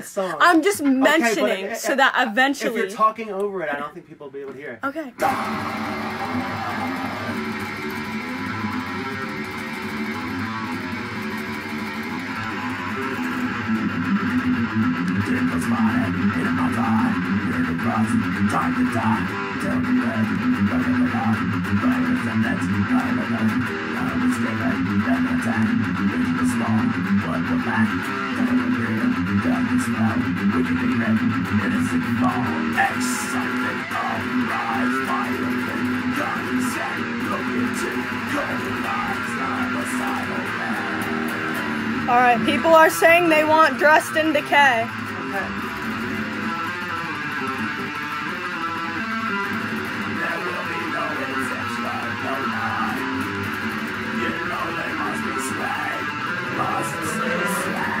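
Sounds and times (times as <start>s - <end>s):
electric guitar riff: 4.9s - 58.0s.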